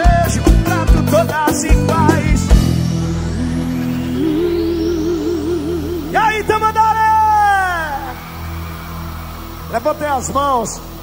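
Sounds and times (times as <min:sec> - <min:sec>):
live band music: 0:00.0 - 0:08.3.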